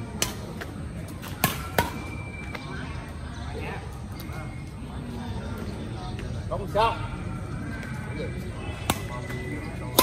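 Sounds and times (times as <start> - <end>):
rackets striking shuttlecock: 0.0 - 2.6, 8.7 - 10.0.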